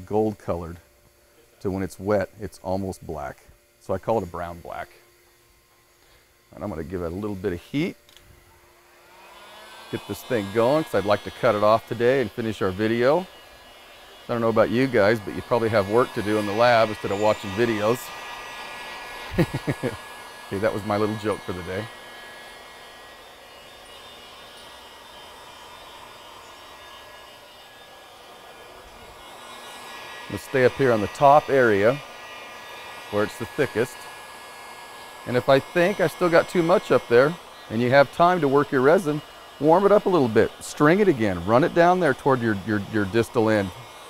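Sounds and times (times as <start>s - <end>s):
heat gun fan whine: 0.0s - 44.0s.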